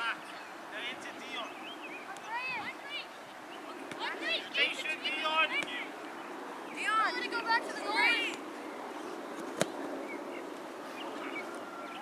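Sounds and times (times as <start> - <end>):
soccer ball kick thud: 9.6 - 9.8.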